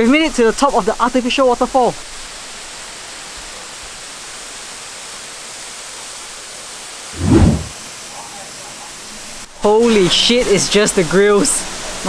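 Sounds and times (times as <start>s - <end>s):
short low thump: 7.2s - 7.7s.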